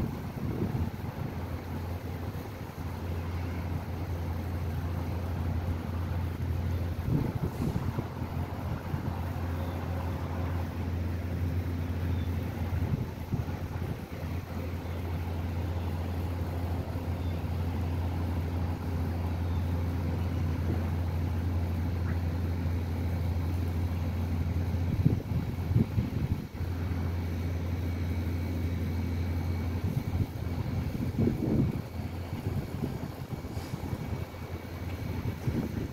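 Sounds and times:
steady low hum: 0.0 - 35.9
brief rumbling bursts: 5.3 - 22.5.

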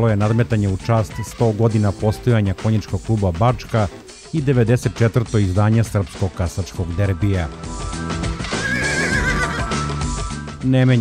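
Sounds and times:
background music: 0.0 - 11.0
horse neighing: 8.3 - 10.2.

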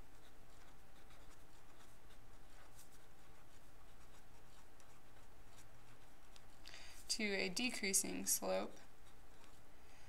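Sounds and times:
marker writing on paper: 0.0 - 6.6, 8.1 - 9.7.

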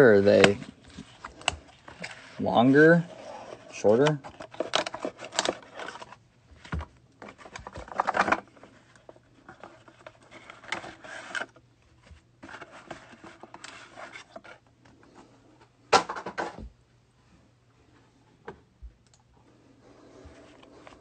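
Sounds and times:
cards and cardboard scraping: 0.2 - 15.3.

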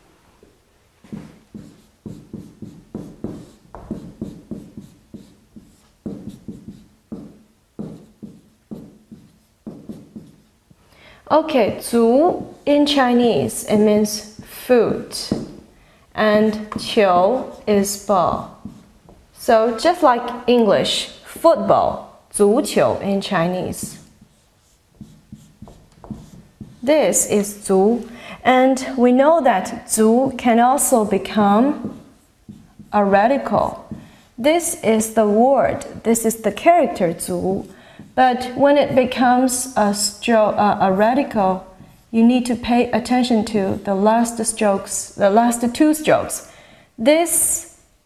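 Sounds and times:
writing implement strokes: 1.1 - 10.5, 16.7 - 19.0, 23.6 - 27.7, 30.0 - 34.2.

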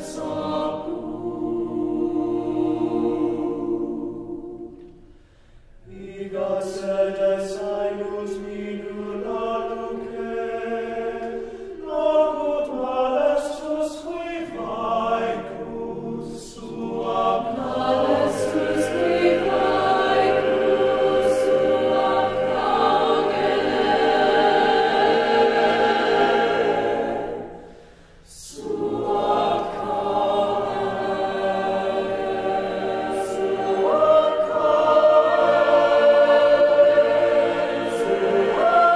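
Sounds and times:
choir singing a cappella: 0.0 - 5.2, 5.8 - 38.9.

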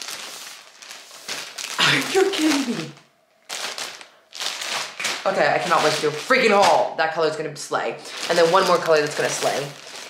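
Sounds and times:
plastic bag crinkling: 0.0 - 7.2, 7.8 - 10.0.

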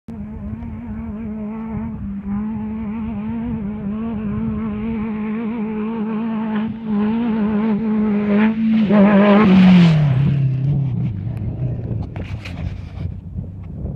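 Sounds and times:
race vehicle engine revving: 0.1 - 13.0.

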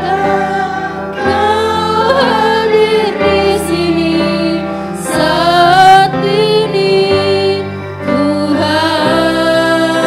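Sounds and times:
musical accompaniment: 0.0 - 10.0
women singing worship song: 0.0 - 10.0.

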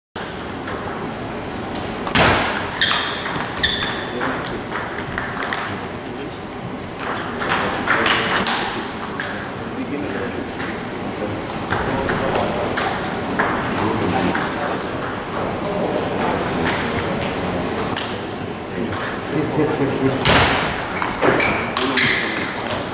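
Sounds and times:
table tennis balls clicking: 0.2 - 5.8, 7.0 - 10.8, 11.4 - 18.1, 20.2 - 22.9
loud knock: 2.1 - 4.0, 20.2 - 21.4
people talking: 2.3 - 22.9.

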